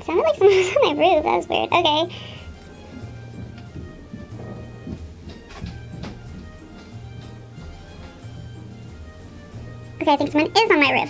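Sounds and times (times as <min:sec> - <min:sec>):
quiet background music: 0:00.0 - 0:11.0
low rumbling and thuds overhead: 0:02.6 - 0:09.5.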